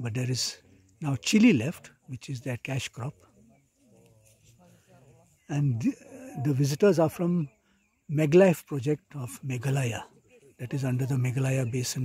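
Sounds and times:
man speaking: 0:00.0 - 0:03.3, 0:05.5 - 0:07.5, 0:08.1 - 0:12.0
distant people talking: 0:00.0 - 0:12.0.

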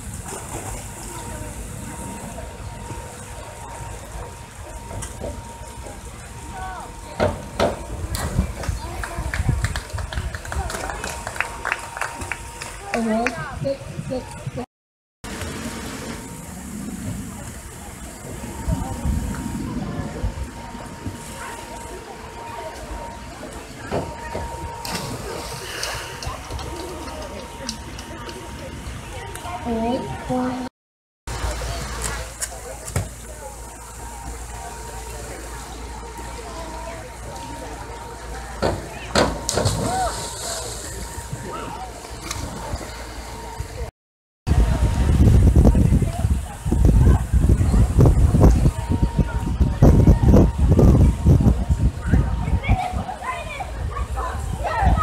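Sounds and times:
steady high-pitched tone: 0:00.0 - 0:09.1, 0:15.5 - 0:30.7, 0:32.7 - 0:43.9
faint distant voices: 0:00.0 - 0:14.6, 0:15.6 - 0:30.7, 0:31.3 - 0:43.9, 0:44.5 - 0:55.0
steady low rumble: 0:00.0 - 0:14.6, 0:15.3 - 0:30.7, 0:44.5 - 0:55.0.

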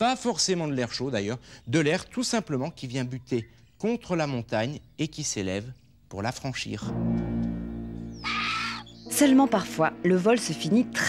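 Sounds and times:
held low music chords: 0:06.8 - 0:11.0
harsh bird cry: 0:08.0 - 0:09.6.

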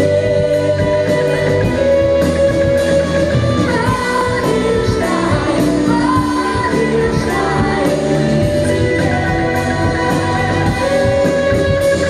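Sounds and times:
live band with electric bass: 0:00.0 - 0:12.0
woman singing into a microphone: 0:00.0 - 0:12.0.

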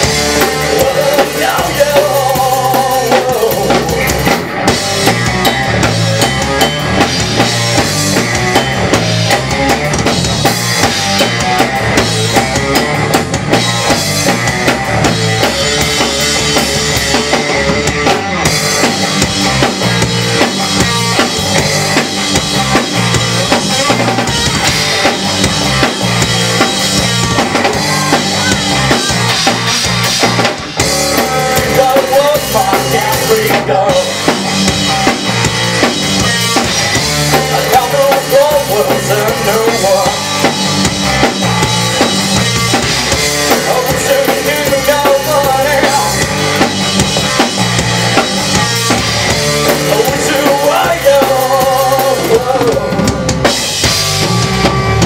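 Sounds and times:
rock band playing: 0:00.0 - 0:55.0.

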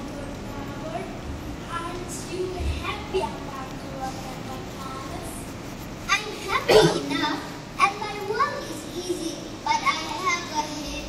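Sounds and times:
child speaking into microphone: 0:00.0 - 0:11.0.

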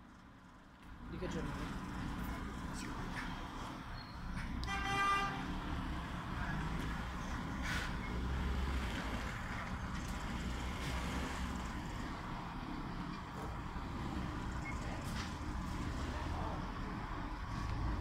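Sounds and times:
bus diesel engine rumbling: 0:00.0 - 0:18.0.

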